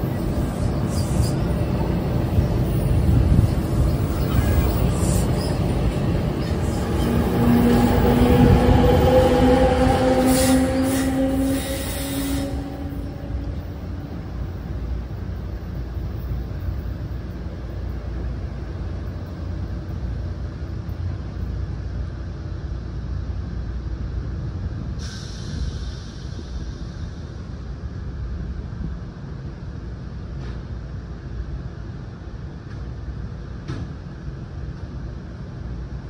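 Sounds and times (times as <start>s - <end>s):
train wheels on rails: 0.0s - 22.4s, 24.4s - 36.0s
distant train rumble: 0.0s - 36.0s.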